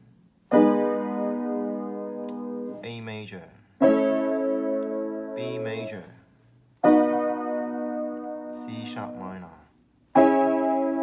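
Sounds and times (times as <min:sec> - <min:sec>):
piano chord ringing: 0:00.0 - 0:03.0, 0:03.8 - 0:06.2, 0:06.8 - 0:09.6, 0:10.2 - 0:11.0.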